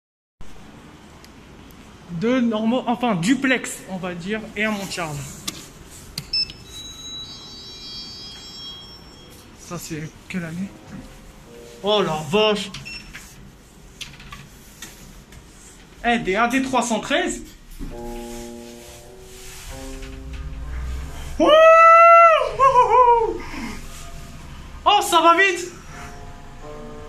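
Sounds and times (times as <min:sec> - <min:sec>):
high electronic chime tones: 0:06.3 - 0:09.7.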